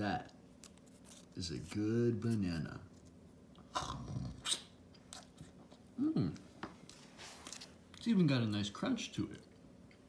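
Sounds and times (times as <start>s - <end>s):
wet mouth clicks: 4.4s - 5.3s.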